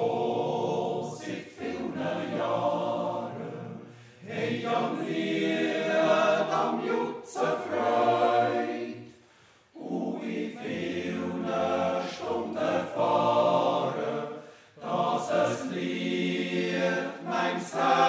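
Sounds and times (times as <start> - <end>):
men's choir yodelling a cappella: 0.0 - 9.1, 9.8 - 18.0.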